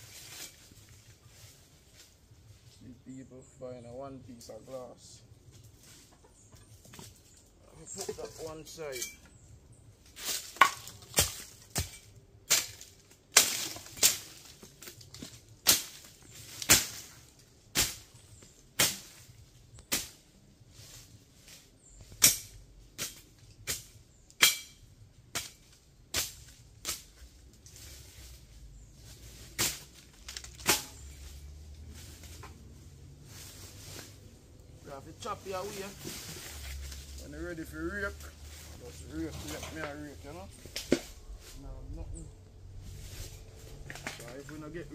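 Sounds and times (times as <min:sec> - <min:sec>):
machete chopping brush: 0:10.2 - 0:18.2, 0:18.8 - 0:20.3, 0:22.1 - 0:27.2, 0:29.4 - 0:32.6, 0:40.6 - 0:41.5.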